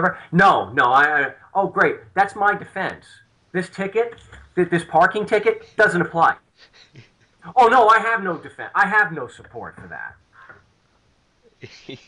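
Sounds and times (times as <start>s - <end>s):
man laughing softly: 6.6s - 7.4s, 11.5s - 12.0s.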